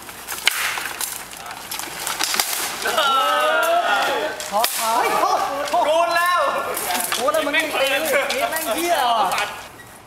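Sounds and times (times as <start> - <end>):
person's long falling shout: 2.8 - 4.4.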